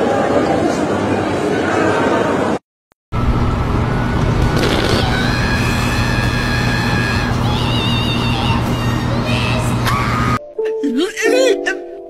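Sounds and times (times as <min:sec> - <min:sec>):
air conditioner humming: 0:03.2 - 0:10.4.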